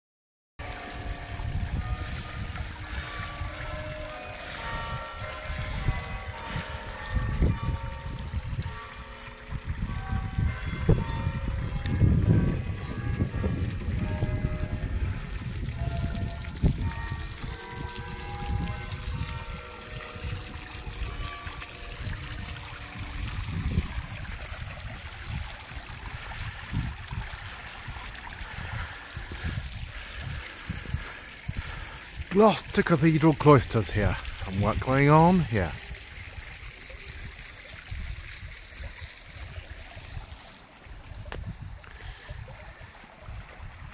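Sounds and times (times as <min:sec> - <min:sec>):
fountain splashing and trickling: 0:00.6 - 0:43.9.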